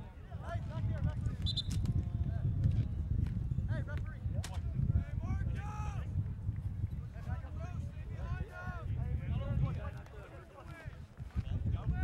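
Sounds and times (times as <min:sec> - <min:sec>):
wind on microphone: 0:00.0 - 0:10.2, 0:10.8 - 0:12.0.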